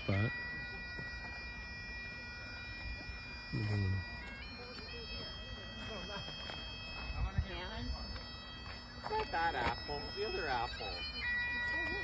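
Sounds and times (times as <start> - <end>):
bagpipes playing: 0.0 - 12.0.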